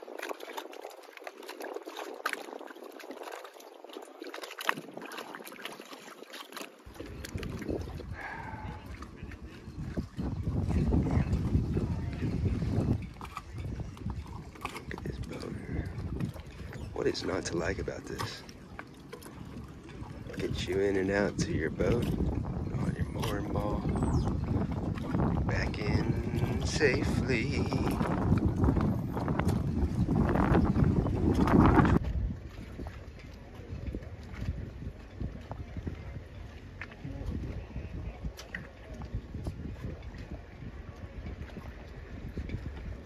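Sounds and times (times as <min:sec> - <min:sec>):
water lapping against dock: 0:00.0 - 0:43.0
low uneven rumble: 0:06.8 - 0:43.0.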